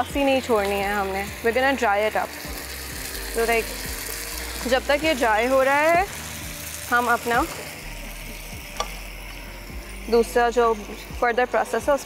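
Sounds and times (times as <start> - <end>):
meat sizzling in a frying pan: 0.0 - 12.0.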